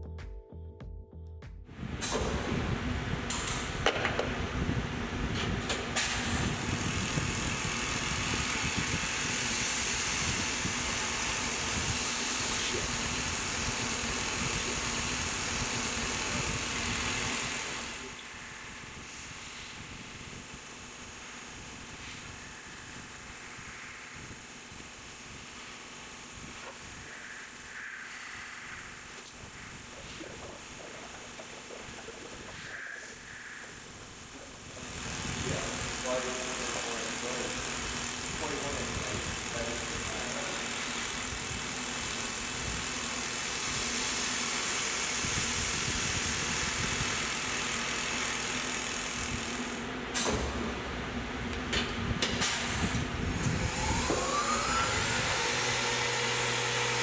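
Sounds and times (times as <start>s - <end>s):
milling machine cutting metal: 5.6s - 50.5s, 52.2s - 57.0s.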